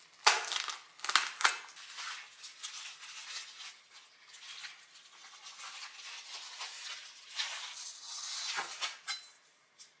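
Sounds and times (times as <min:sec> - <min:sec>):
knife cutting plastic package: 0:00.0 - 0:01.9
plastic crinkling and rustling: 0:00.0 - 0:09.1.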